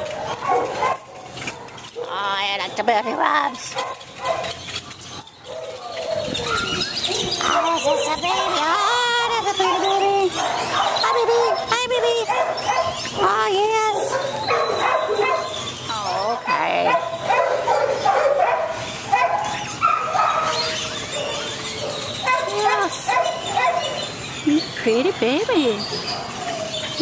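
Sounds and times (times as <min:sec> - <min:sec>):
dog whining and yipping: 0:00.0 - 0:02.1, 0:03.0 - 0:24.4, 0:25.9 - 0:27.0.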